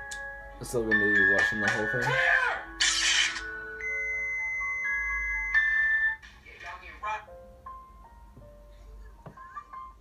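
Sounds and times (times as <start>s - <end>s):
music through tablet speaker: 0.0s - 10.0s.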